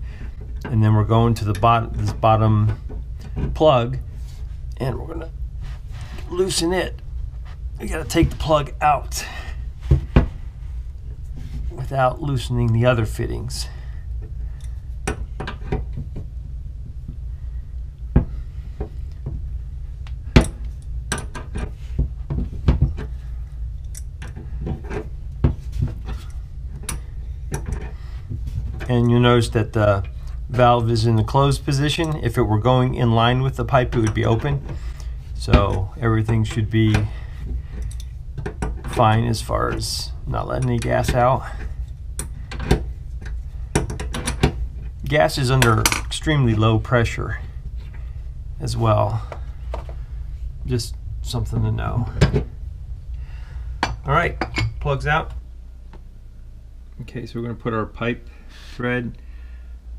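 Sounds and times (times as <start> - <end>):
low steady hum: 0.0 - 59.9.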